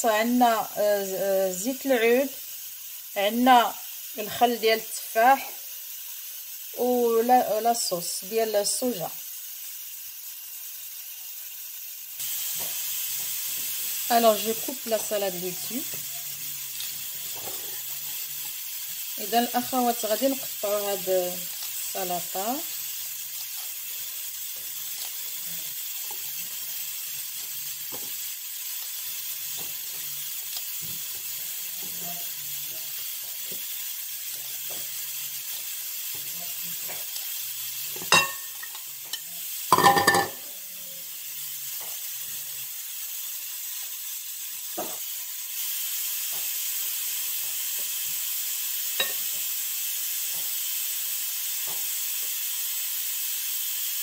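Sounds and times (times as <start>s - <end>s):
steady hiss: 0.0s - 54.0s.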